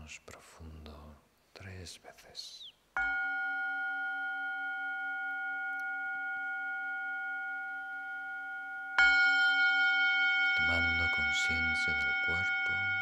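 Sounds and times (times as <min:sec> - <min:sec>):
singing bowl ringing: 0:03.0 - 0:13.0.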